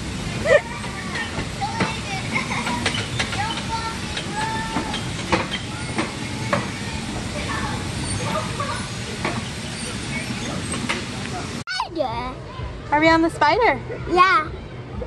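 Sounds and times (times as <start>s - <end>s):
bumper cars hiss and whir: 0.0s - 11.6s
faint children's voices: 0.4s - 12.9s, 13.8s - 15.0s
sharp clicks and knocks: 2.6s - 6.8s.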